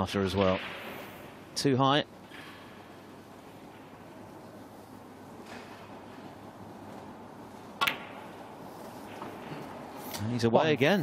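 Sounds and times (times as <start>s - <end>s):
snooker ball struck: 7.8s - 8.4s.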